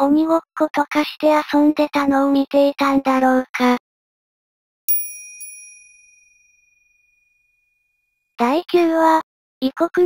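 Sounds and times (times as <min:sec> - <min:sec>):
small bell chime: 0:04.9 - 0:08.2.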